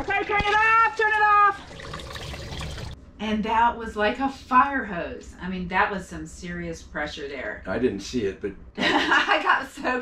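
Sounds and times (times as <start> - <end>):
water gushing into bucket: 1.4 - 3.0.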